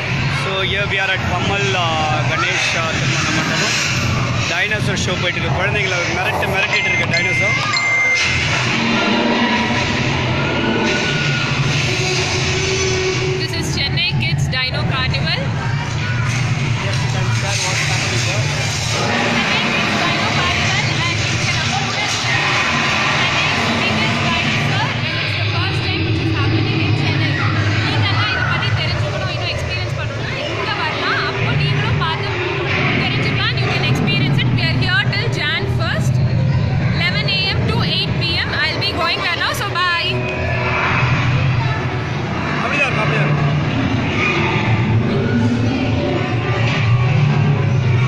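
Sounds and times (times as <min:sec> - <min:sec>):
loud sound from speakers: 0:00.0 - 0:48.0
people talking and chattering: 0:00.0 - 0:48.0
steady low rumble: 0:08.4 - 0:48.0.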